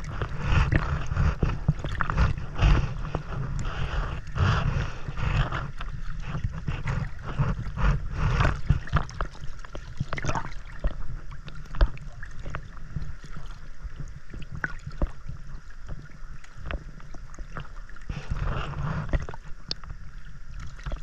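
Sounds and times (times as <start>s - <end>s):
low rumble of water: 0.0s - 21.0s
small splashes and gurgles: 0.0s - 21.0s
water sloshing and splashing: 0.0s - 21.0s.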